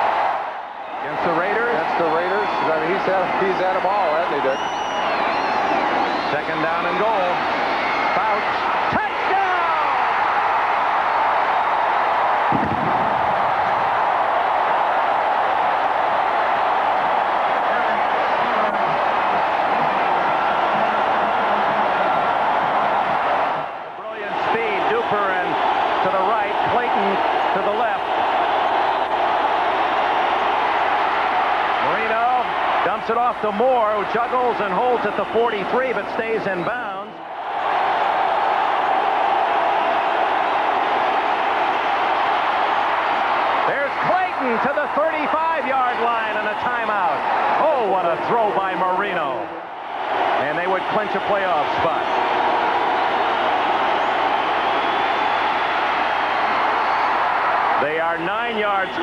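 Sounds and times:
stadium crowd cheering and shouting: 0.0s - 59.0s.

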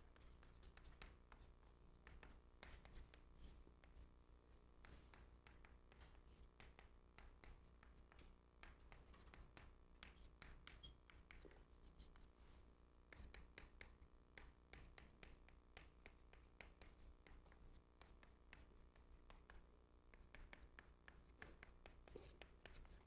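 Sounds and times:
chalk writing on blackboard: 0.0s - 4.1s, 4.8s - 12.3s, 13.1s - 23.0s.

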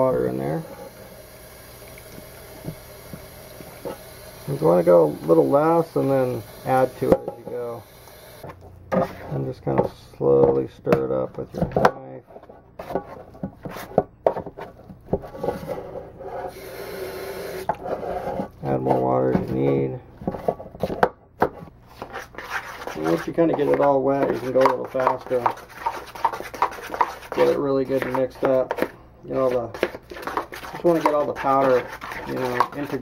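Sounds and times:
tap water running into pan: 0.0s - 8.5s
putty knife scraping metal pan: 21.9s - 33.0s.

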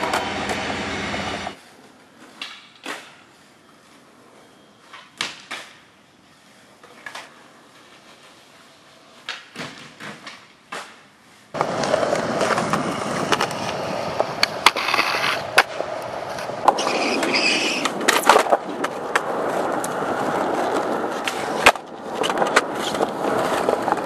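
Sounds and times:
skateboard clacks: 0.0s - 0.9s, 9.1s - 24.0s
skateboard wheels rolling on concrete: 0.0s - 24.0s.

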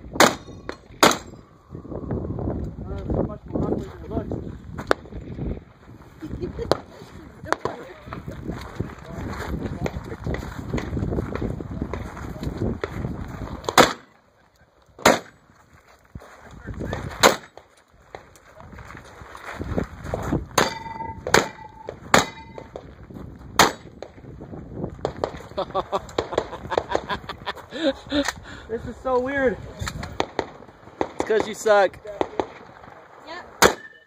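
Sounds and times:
shotgun shots: 0.1s - 1.4s, 13.7s - 14.1s, 15.0s - 15.4s, 17.2s - 17.6s, 20.6s - 22.7s, 23.6s - 24.1s, 33.6s - 34.0s.

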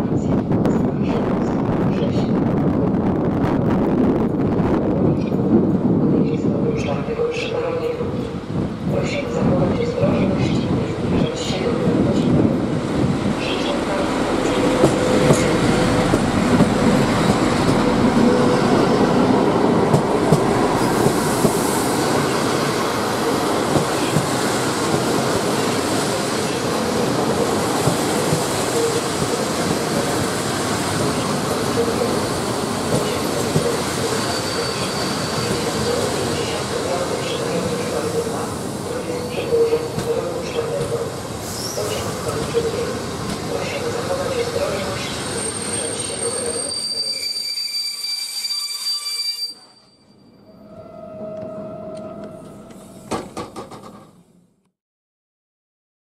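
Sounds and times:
train wheels rumbling on rail: 0.0s - 47.4s, 51.3s - 54.2s
wheels squealing: 45.2s - 53.0s.

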